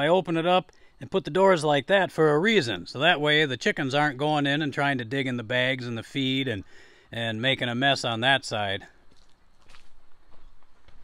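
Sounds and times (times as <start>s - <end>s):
footsteps and scuffs: 9.1s - 11.0s.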